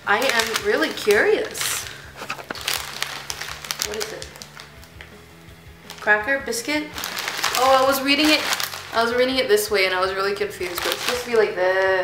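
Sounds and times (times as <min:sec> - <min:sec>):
plastic wrapper crinkling: 0:00.0 - 0:05.2, 0:05.8 - 0:11.7.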